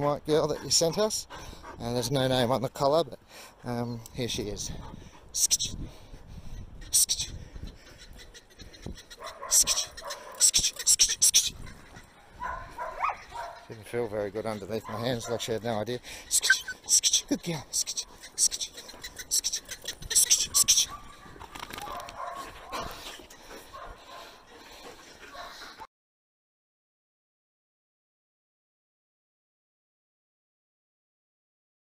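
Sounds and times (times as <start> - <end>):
dog yelping and whining: 16.4 - 16.9.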